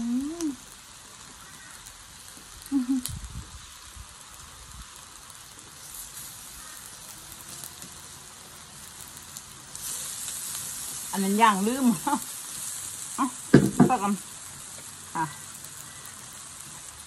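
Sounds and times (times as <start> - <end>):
meat sizzling on a grill: 0.0 - 17.0.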